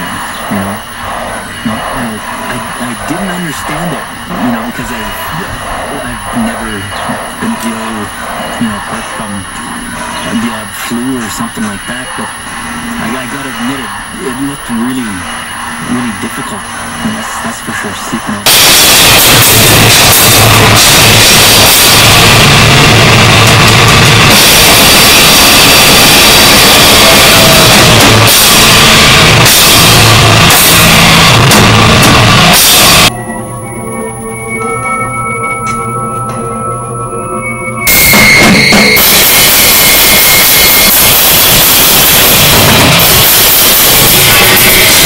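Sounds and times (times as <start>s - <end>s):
heavy low rumble: 0.0s - 33.2s, 35.8s - 45.0s
harsh distorted noise music: 0.0s - 45.0s
high steady tone: 0.0s - 45.0s.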